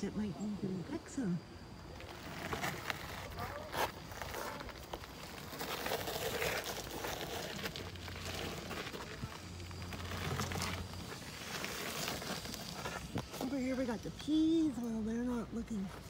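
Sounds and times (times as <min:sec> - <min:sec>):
wheelchair rustling and crackling: 0:01.9 - 0:16.0.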